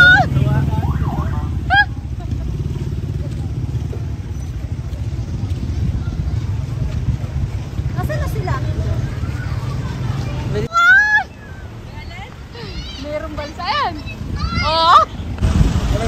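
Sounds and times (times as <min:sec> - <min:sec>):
low street rumble: 0:00.0 - 0:16.0
passers-by talking: 0:00.0 - 0:16.0.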